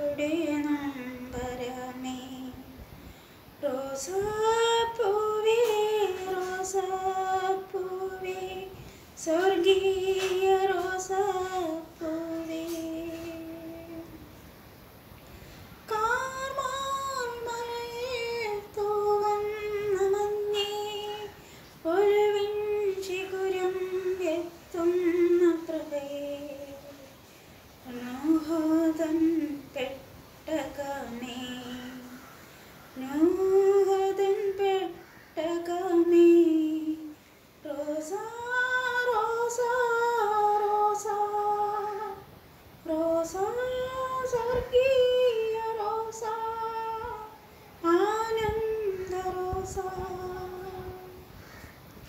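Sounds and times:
woman singing unaccompanied: 0.0 - 51.8.

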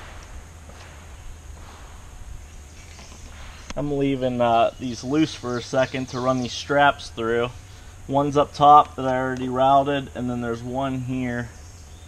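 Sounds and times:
faint even hiss: 0.0 - 11.6
steady low rumble: 0.0 - 11.7.

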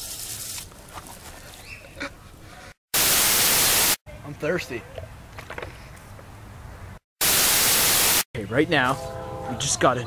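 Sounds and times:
loud burst of static: 2.9 - 4.0, 7.2 - 8.3.

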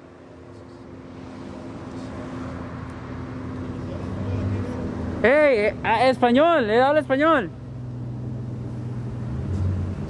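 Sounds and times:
road noise: 0.0 - 10.0
vehicle engine running: 0.0 - 10.0.

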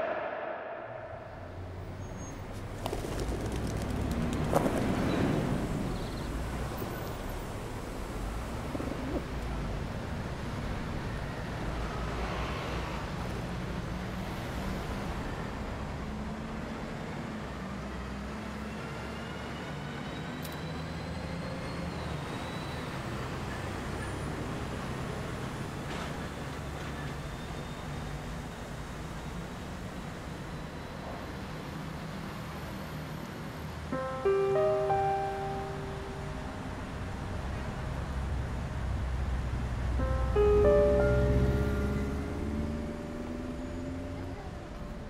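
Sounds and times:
buses and cars rumbling past: 0.0 - 45.0
piano notes ringing: 33.9 - 38.8, 39.8 - 45.0.

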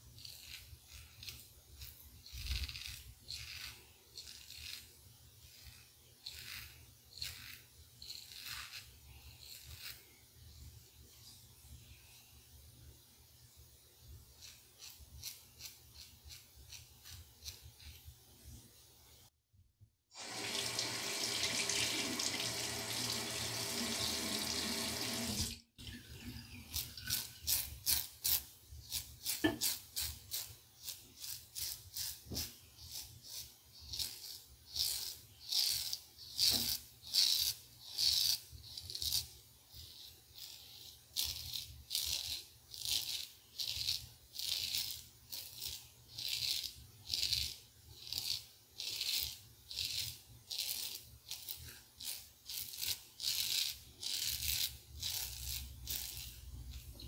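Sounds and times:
razor scraping stubble: 0.1 - 10.1, 14.4 - 18.1, 26.7 - 57.0
bathroom tap running: 20.2 - 26.1.

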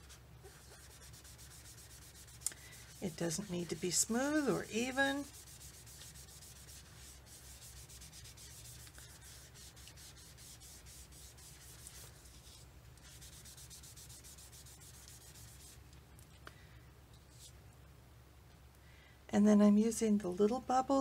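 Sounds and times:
sponge scratching on paper: 0.0 - 15.8.

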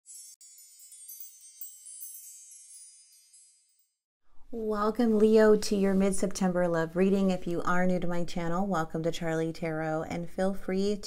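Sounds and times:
high-pitched shimmering chimes: 0.0 - 4.1.

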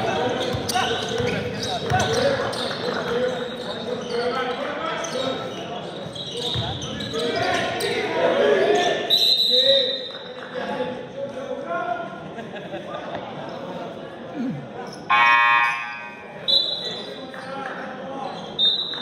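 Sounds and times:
players' voices echoing: 0.0 - 19.0
referee's whistle: 9.1 - 10.2, 15.1 - 17.2, 18.5 - 19.0
scoreboard buzzer: 15.1 - 16.2.

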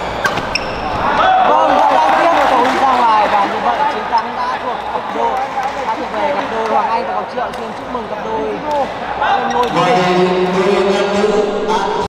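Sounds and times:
shoes squeaking on court: 0.0 - 1.1, 9.4 - 9.8
racket hitting shuttlecock: 0.2 - 0.7.

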